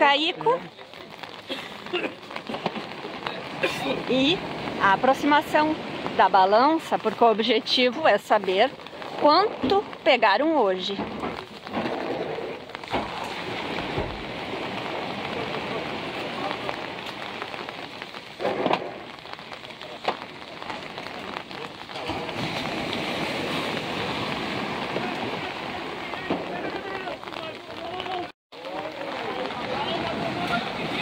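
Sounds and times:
steady rain falling: 0:00.0 - 0:31.0.

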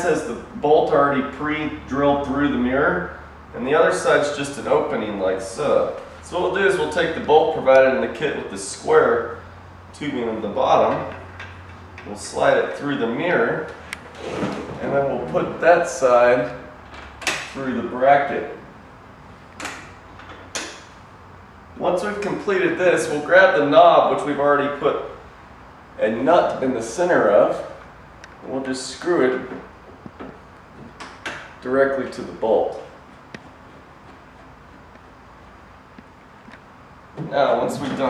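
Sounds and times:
low room hum: 0:00.0 - 0:38.0.

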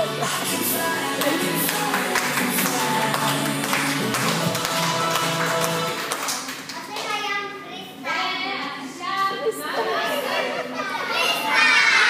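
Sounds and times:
children talking and calling out: 0:09.2 - 0:12.0.

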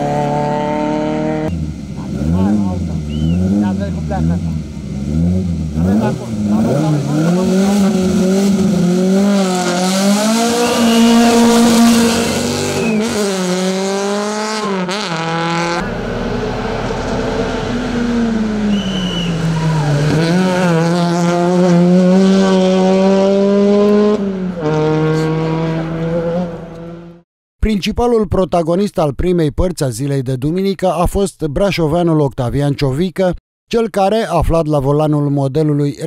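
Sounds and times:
race car engines revving: 0:00.0 - 0:27.2
high tyre squeals: 0:03.0 - 0:03.5, 0:09.5 - 0:13.5, 0:17.7 - 0:20.8.

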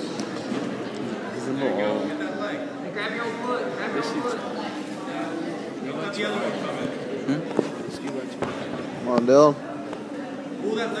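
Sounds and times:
spectators' voices: 0:00.0 - 0:11.0.

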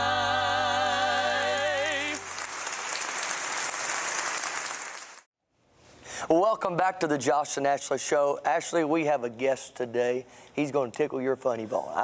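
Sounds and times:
audience applauding: 0:01.1 - 0:05.3.

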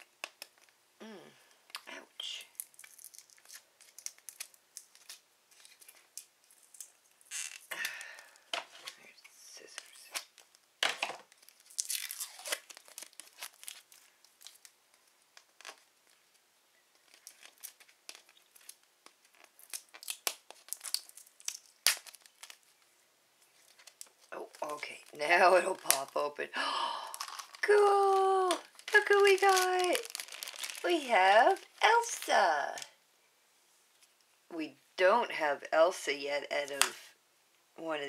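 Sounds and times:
plastic wrap crinkling and tearing: 0:02.2 - 0:26.4, 0:27.0 - 0:32.9.

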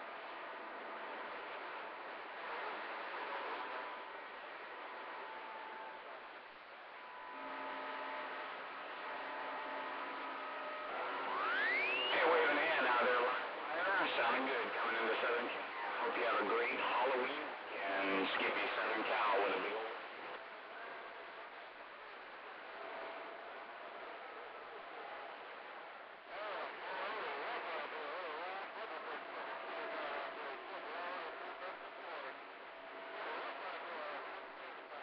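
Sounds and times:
garbled voice through radio: 0:12.1 - 0:20.0.

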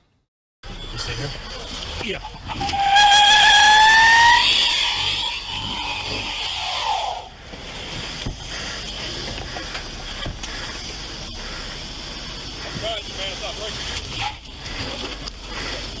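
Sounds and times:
spinning tyres and engine: 0:00.6 - 0:16.0
tyres screeching: 0:00.7 - 0:16.0.

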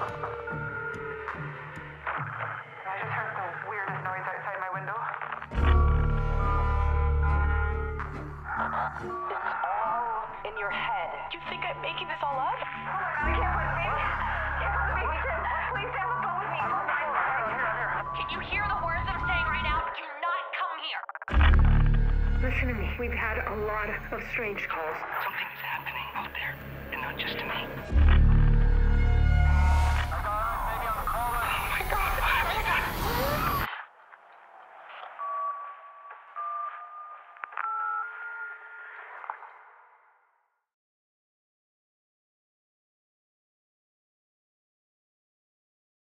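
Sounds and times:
trailer music low rumble: 0:05.5 - 0:09.4, 0:21.3 - 0:33.7
garbled warbling radio-like tones: 0:29.9 - 0:33.7.

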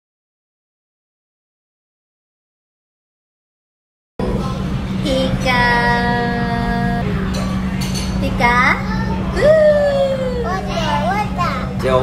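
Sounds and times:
low hum: 0:04.2 - 0:12.0.

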